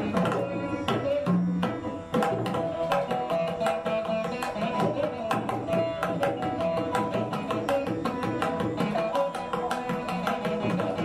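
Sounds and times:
hand drum strokes: 0.0 - 11.0
winding instrumental melody: 0.0 - 11.0.

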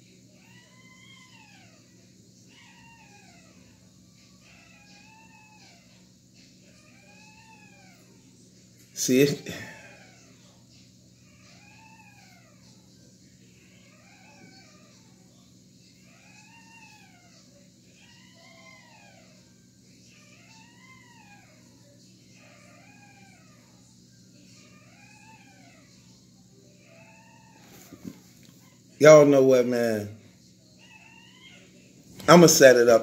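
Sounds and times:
animal whining calls: 0.4 - 33.0.

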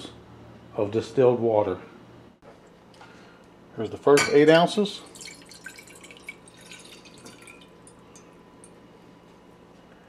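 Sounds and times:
water trickling into saucepan: 5.1 - 8.4.

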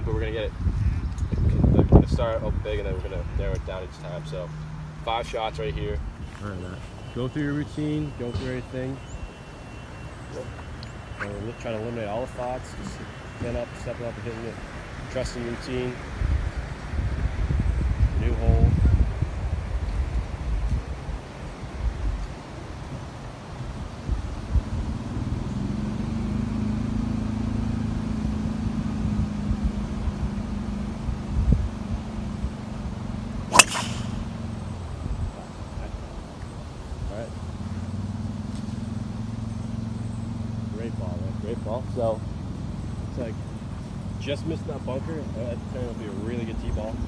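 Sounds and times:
low engine hum: 0.0 - 47.0
golf driver striking ball: 33.5 - 34.5.

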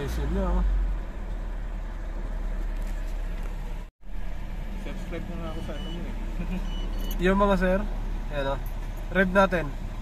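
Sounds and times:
car engine fast idling: 3.2 - 10.0.

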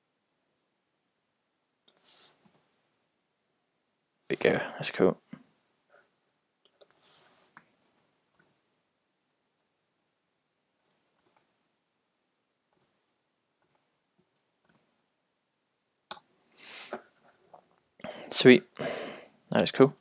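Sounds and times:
computer mouse clicks: 1.8 - 2.6, 6.6 - 8.6, 10.8 - 11.5, 12.7 - 13.0, 13.6 - 14.9.

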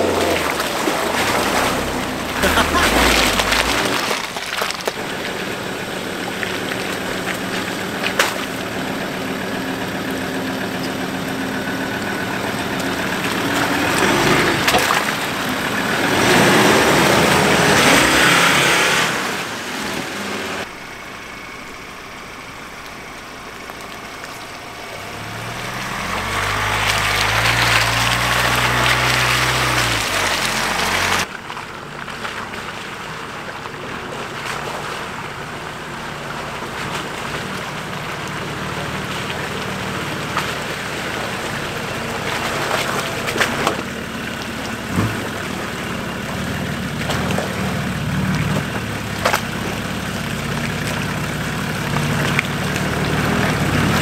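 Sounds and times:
approaching vehicle engine: 0.0 - 54.0
tyres churning mud and water: 0.0 - 54.0
vehicle engine running: 0.0 - 54.0.

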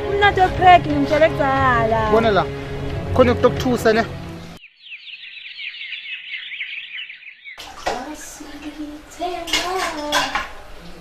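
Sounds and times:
birds chirping: 2.1 - 9.1.

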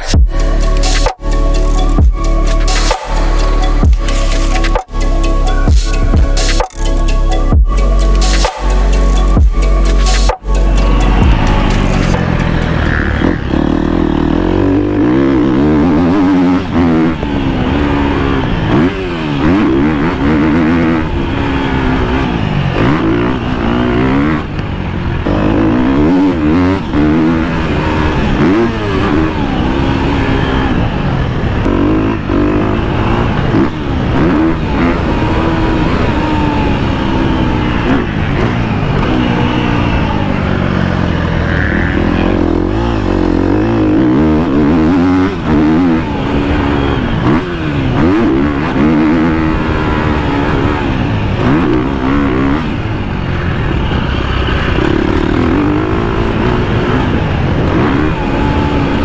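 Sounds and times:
motocross bike engine revving: 0.0 - 59.0.

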